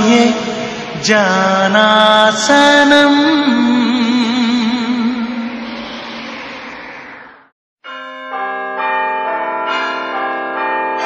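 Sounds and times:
bell-like chiming music: 7.8 - 11.0.

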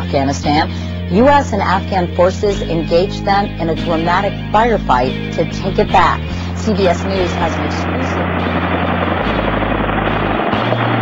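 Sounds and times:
helicopter rotor and engine: 5.4 - 11.0.

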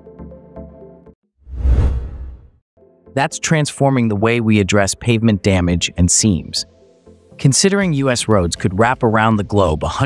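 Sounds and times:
whoosh: 1.5 - 2.6.

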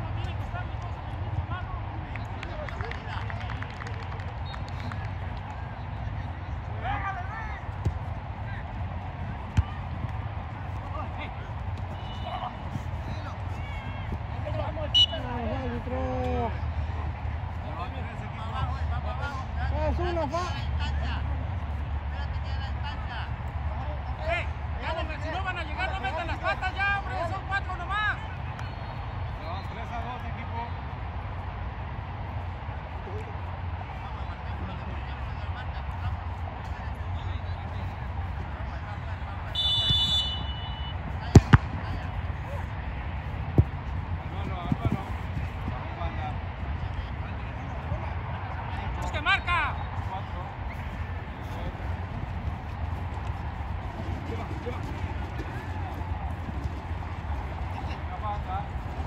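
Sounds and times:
players shouting: 6.7 - 28.4, 33.0 - 46.5, 47.5 - 59.0
ball being kicked: 7.8 - 8.1, 41.3 - 42.2, 43.4 - 45.4
referee's whistle blast: 14.9 - 15.3, 39.5 - 41.6.

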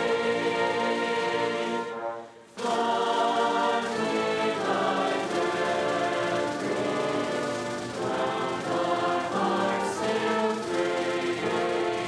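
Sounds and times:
mixed choir singing: 0.0 - 12.0
small instrumental ensemble with flutes: 0.0 - 12.0.

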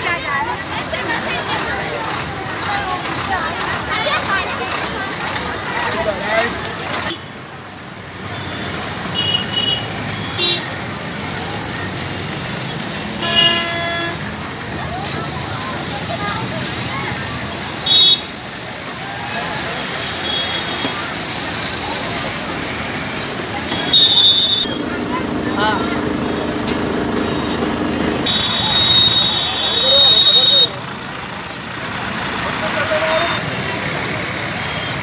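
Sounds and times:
road traffic: 0.0 - 35.0
vehicle horns honking: 8.5 - 10.8, 13.2 - 14.4, 17.8 - 18.3, 23.6 - 24.8, 28.2 - 30.8.

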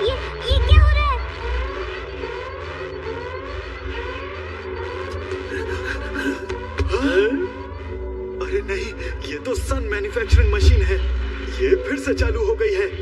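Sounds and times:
rising siren-like sweeps: 0.0 - 8.8
film soundtrack music: 0.0 - 13.0.

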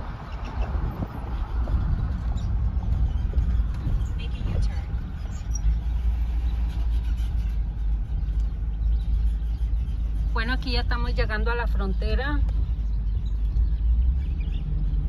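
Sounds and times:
car rolling rumble: 0.0 - 15.0.

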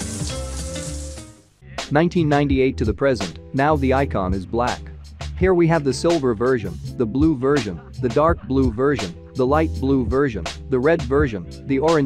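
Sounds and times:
tape hiss: 0.0 - 1.5
man speaking: 1.7 - 4.8, 5.4 - 12.0.

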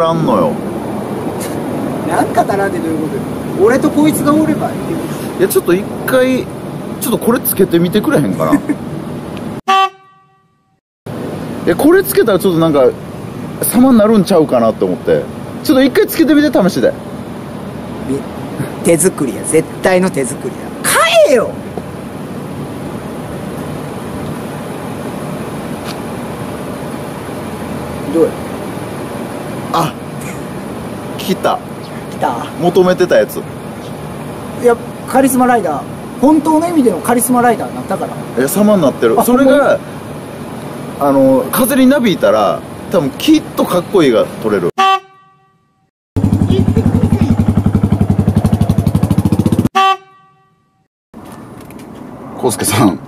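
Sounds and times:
low outdoor rumble: 46.2 - 49.7
motorcycle engine idling: 46.2 - 49.7.

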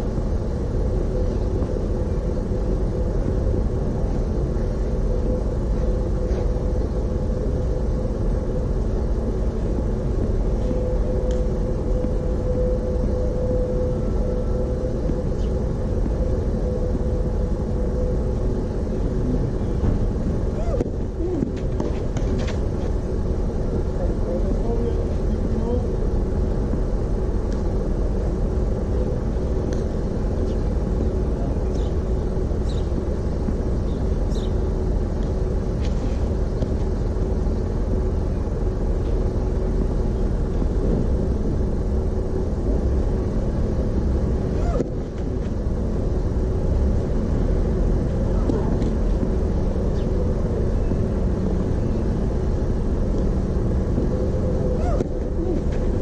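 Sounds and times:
low outdoor rumble: 0.0 - 56.0.

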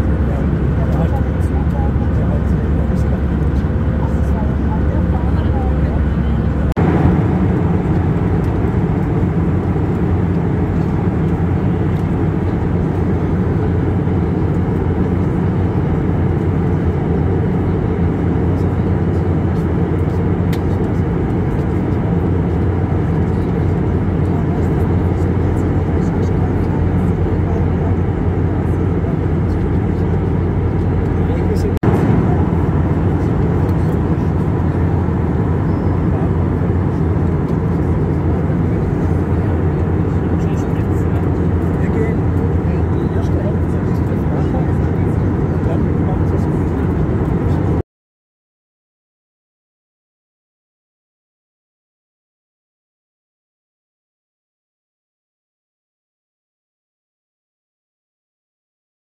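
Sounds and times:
airliner cabin engine rush: 0.0 - 47.8.

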